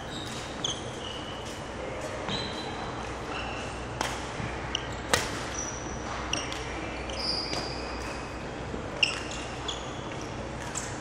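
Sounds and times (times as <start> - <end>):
sneakers squeaking on wooden floor: 0.0 - 3.7, 4.7 - 10.4.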